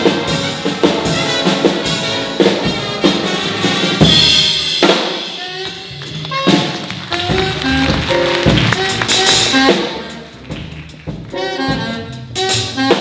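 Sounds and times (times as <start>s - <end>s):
drum kit hits: 0.0s - 13.0s
horn section accents: 0.0s - 13.0s.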